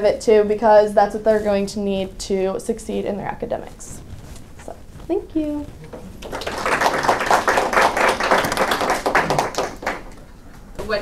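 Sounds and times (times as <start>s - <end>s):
audience applauding: 5.7s - 10.3s.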